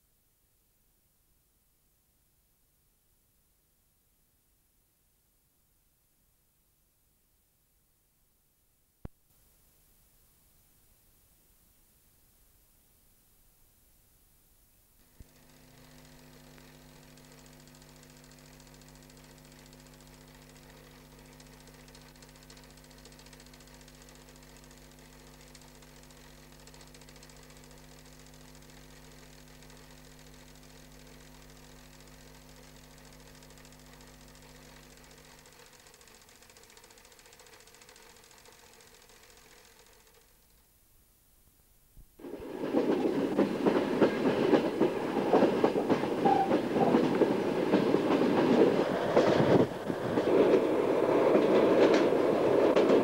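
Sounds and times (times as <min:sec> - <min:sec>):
faint mechanical hum: 0:00.0 - 0:53.0
click: 0:16.5 - 0:24.8.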